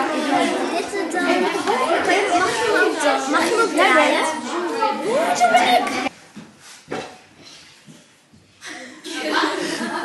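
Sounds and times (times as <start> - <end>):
children chattering: 0.0 - 6.1, 8.6 - 10.0.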